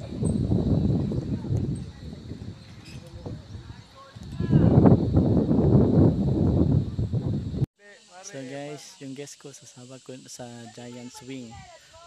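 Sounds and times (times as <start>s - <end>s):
wind buffeting microphone: 0.0s - 7.7s.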